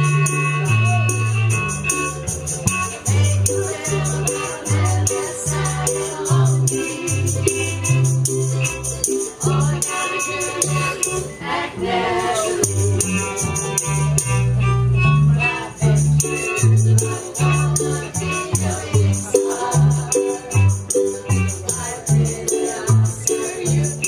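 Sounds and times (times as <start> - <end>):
strummed strings: 0.0 - 24.0
voices singing: 0.0 - 24.0
walking bass line: 0.0 - 24.0.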